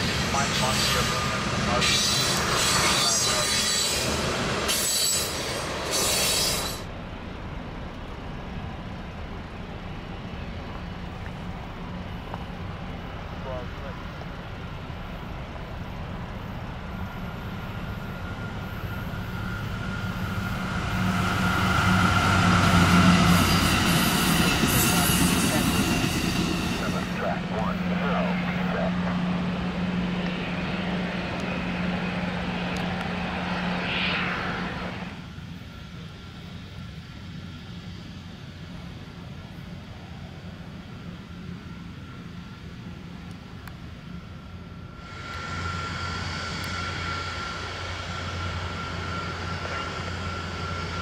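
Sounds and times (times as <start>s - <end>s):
train wheels rumbling on rails: 0.0s - 33.8s
train engine hum: 0.0s - 51.0s.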